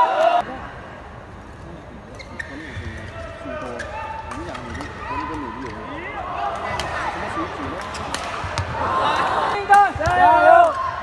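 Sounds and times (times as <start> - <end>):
voices in a hall: 0.0 - 11.0
shoes squeaking on court: 2.2 - 3.1.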